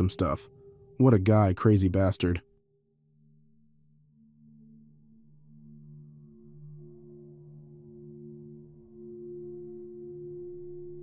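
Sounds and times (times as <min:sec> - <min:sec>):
ambient music drone: 0:00.0 - 0:11.0.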